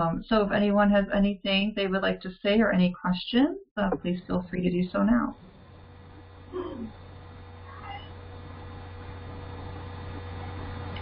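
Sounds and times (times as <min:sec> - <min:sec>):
electrical hum and hiss: 0:03.8 - 0:11.0
faint pitch-bending sound: 0:06.4 - 0:11.0.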